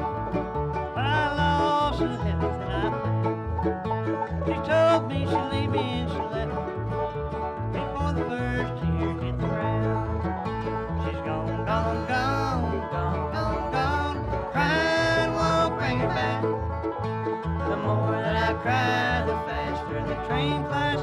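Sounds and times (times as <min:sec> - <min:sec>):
bluegrass band playing: 0:00.0 - 0:21.0.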